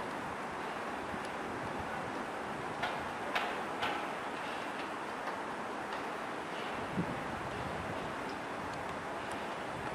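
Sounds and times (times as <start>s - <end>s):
outdoor background hiss: 0.0s - 9.9s.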